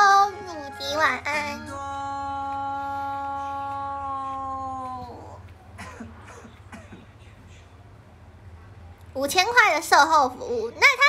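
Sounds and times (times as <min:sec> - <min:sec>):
woman humming a long note: 0:00.3 - 0:05.4.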